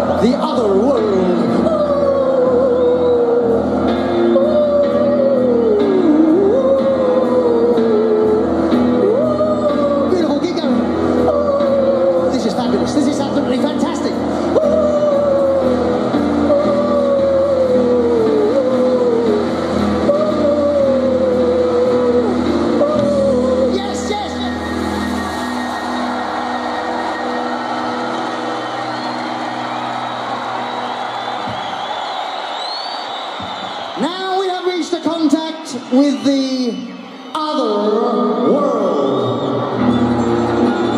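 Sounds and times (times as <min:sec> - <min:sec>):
crowd noise: 0:00.0 - 0:40.9
falling vocal ooh: 0:01.4 - 0:10.2, 0:14.3 - 0:30.3.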